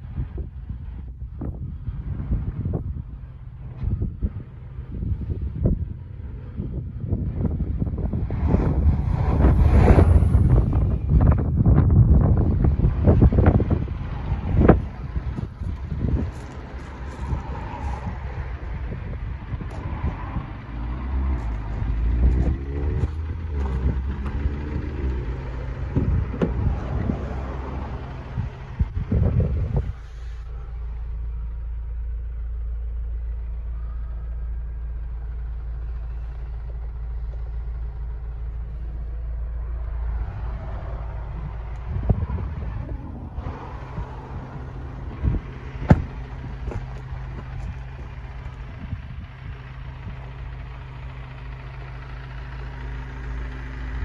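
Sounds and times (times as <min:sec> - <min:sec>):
diesel engine idling: 0:00.0 - 0:54.0
motor vehicle running: 0:00.0 - 0:54.0
wind rumble on microphone: 0:00.0 - 0:54.0.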